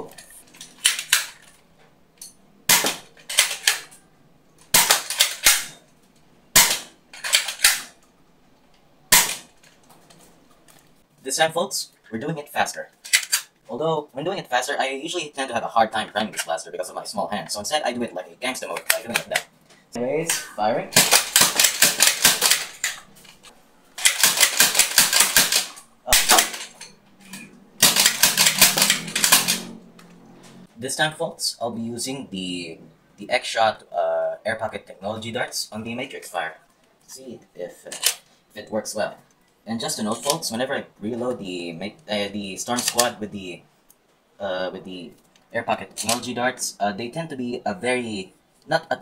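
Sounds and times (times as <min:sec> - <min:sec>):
toy blaster plastic clicks and snaps: 0:00.2 - 0:01.5, 0:24.0 - 0:29.8.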